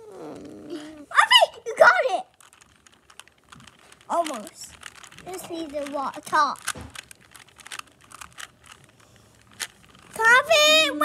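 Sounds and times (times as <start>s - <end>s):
puzzle cube clicking: 2.3s - 10.4s.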